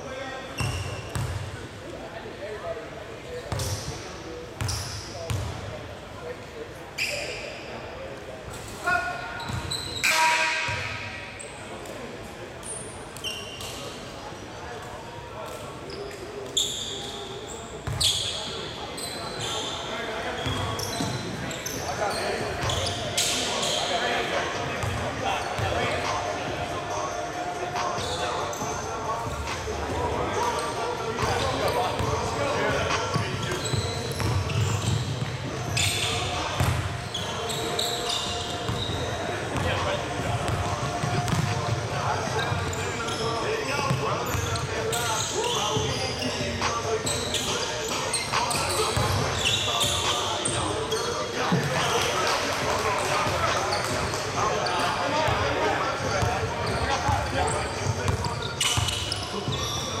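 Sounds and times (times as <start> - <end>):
sneaker squeaks: 0.2 - 1.5, 3.5 - 5.5, 7.0 - 7.8, 8.5 - 11.7, 12.6 - 14.0, 15.5 - 52.3, 53.0 - 60.0.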